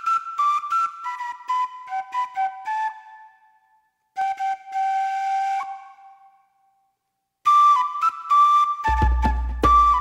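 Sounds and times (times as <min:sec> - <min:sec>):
flute-like wind instrument: 0:00.0 - 0:06.8, 0:07.4 - 0:10.0.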